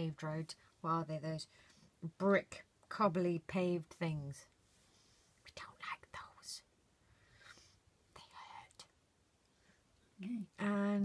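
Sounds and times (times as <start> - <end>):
person whispering: 5.4 - 6.7, 8.1 - 8.9, 10.2 - 11.0.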